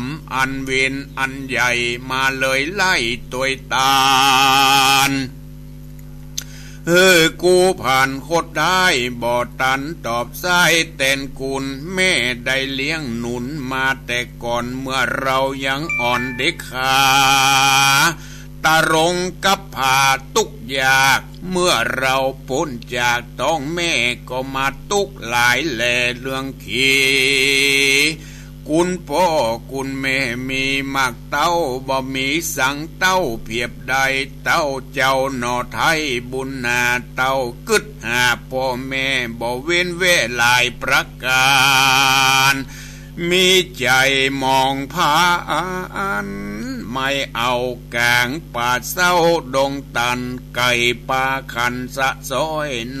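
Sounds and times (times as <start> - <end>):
person chanting verse: 0.0 - 5.3, 6.9 - 53.0
steady low hum: 0.0 - 53.0.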